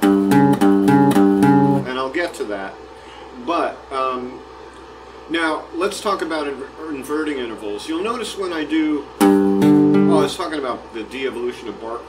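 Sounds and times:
acoustic guitar playing intervals: 0:00.0 - 0:01.9, 0:09.2 - 0:10.4.

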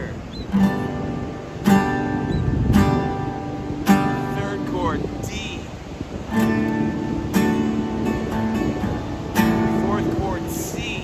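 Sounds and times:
acoustic guitar strumming chord: 0:00.5 - 0:11.0.

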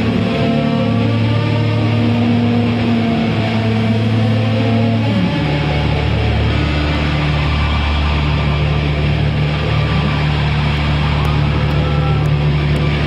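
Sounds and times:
distorted rock guitars and bass drone: 0:00.0 - 0:13.0.

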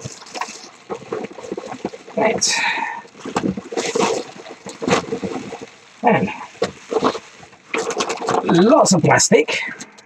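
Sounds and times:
bubble wrap crinkling: 0:00.0 - 0:09.2.

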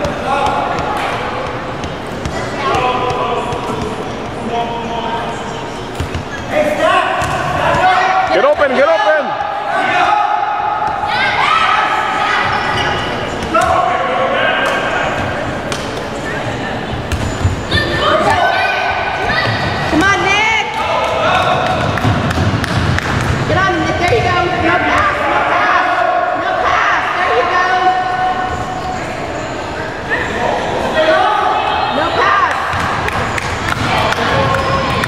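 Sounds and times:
sneakers squeaking: 0:00.0 - 0:10.0, 0:10.8 - 0:21.5, 0:31.6 - 0:35.0.

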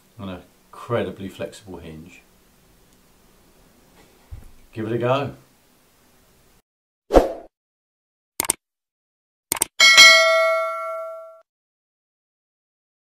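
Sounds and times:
clicks: 0:08.4 - 0:08.6, 0:09.5 - 0:09.7
bright bell ding: 0:09.8 - 0:11.4.

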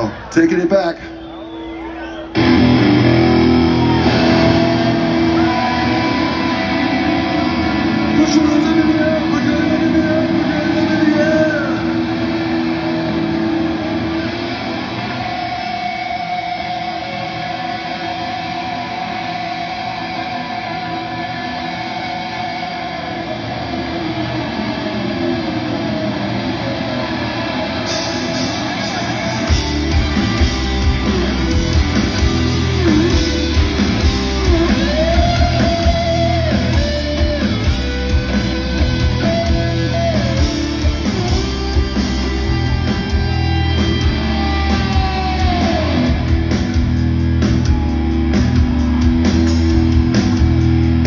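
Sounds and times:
live rock band: 0:00.0 - 0:51.0.

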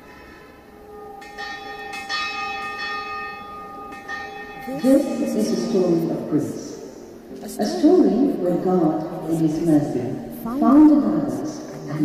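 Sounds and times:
church bell ringing: 0:00.0 - 0:12.0.

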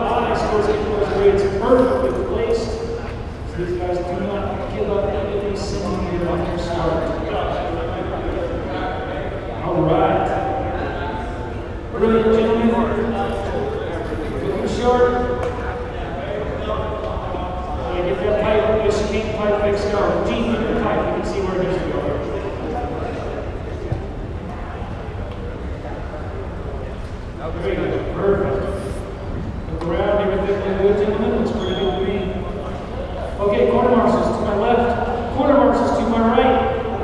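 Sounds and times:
indistinct voices in echoing hall: 0:00.0 - 0:37.0
low background din: 0:00.0 - 0:37.0.

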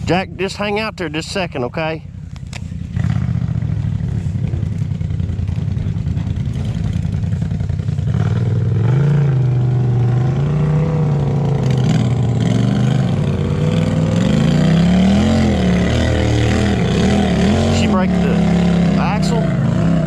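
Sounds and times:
off-road vehicle engine revving: 0:00.0 - 0:20.0.

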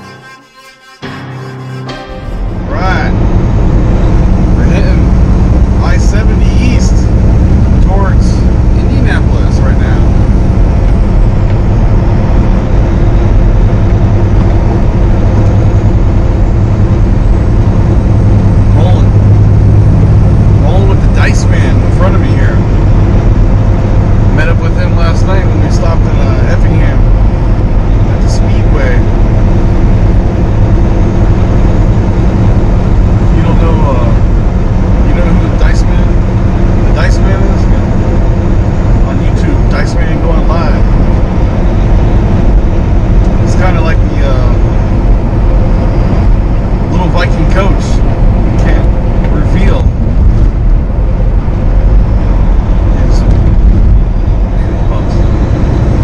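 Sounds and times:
road noise: 0:00.0 - 0:56.0
truck engine drone: 0:00.0 - 0:56.0.

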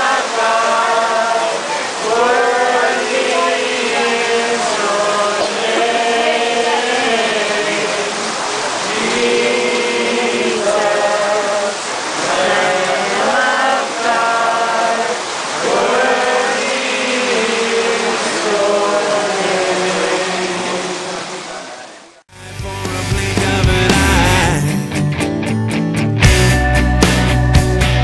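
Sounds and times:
group singing slow chant: 0:00.0 - 0:21.6, 0:23.6 - 0:24.7
rock music with guitar: 0:22.6 - 0:28.0.

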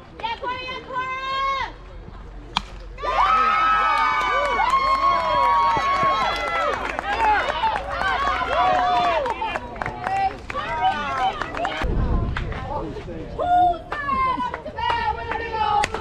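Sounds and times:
bat cracking ball: 0:02.5 - 0:02.9
crowd yelling and cheering: 0:03.0 - 0:12.0.

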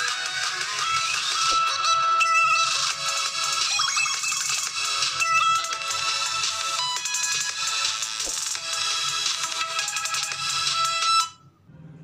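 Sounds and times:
electronic music through phone speaker: 0:00.0 - 0:11.4.

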